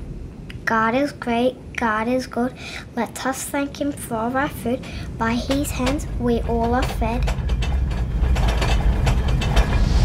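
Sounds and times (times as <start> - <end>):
deep rumble: 0.0 - 1.8, 3.8 - 10.0
dishes and glassware rattling: 4.8 - 10.0.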